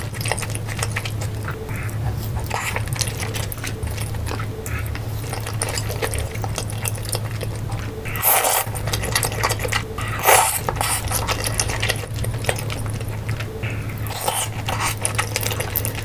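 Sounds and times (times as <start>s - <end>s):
slurping noodles: 0.0s - 16.0s
steady low hum: 0.0s - 16.0s
wet chewing of noodles: 0.0s - 16.0s.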